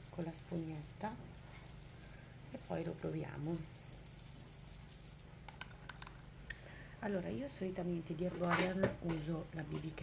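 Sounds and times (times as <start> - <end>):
bracelet charms jangling: 0.0 - 6.1
low room hum: 0.0 - 10.0.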